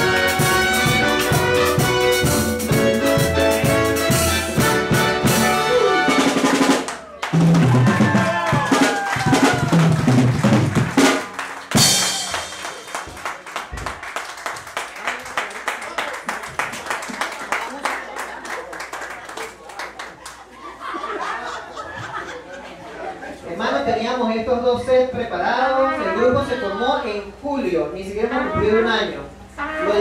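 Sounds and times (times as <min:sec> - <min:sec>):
live band playing: 0:00.0 - 0:14.0
people clapping: 0:06.3 - 0:20.6.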